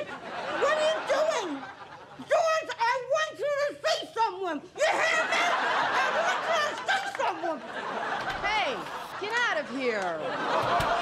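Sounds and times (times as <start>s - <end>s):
studio audience laughing: 0.0s - 2.3s, 4.8s - 11.0s.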